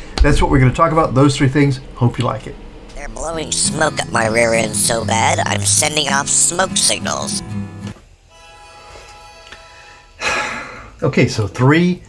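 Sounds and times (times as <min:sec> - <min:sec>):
faint guitar music: 0:03.0 - 0:08.0.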